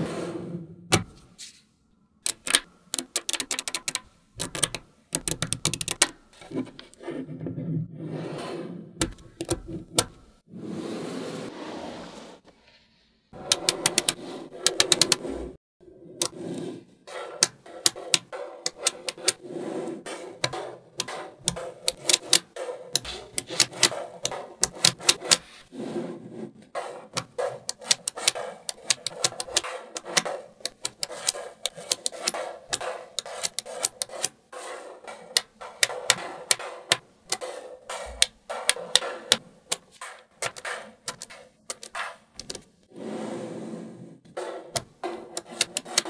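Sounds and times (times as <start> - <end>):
magnetic balls clicking together: 2.2 - 6.2, 13.4 - 15.2, 17.4 - 19.4, 20.4 - 25.4, 27.2 - 34.3, 35.3 - 42.7, 44.8 - 46.0.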